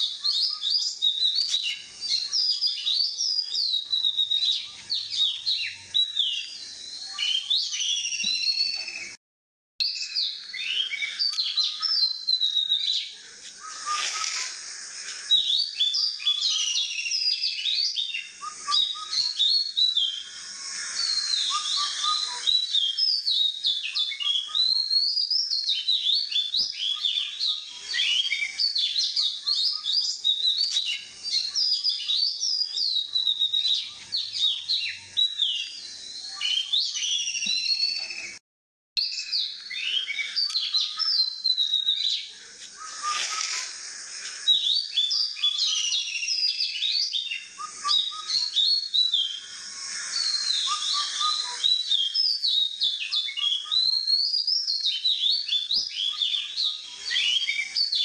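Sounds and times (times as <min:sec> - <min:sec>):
songbirds chirping: 0:00.0 - 0:09.2, 0:09.8 - 0:38.4, 0:39.0 - 0:58.0.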